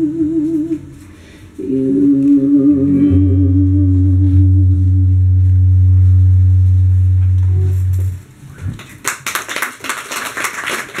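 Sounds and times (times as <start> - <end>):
guitar tones: 1.6 - 8.8
low electric bass note: 2.4 - 8.8
small group applauding: 8.7 - 11.0.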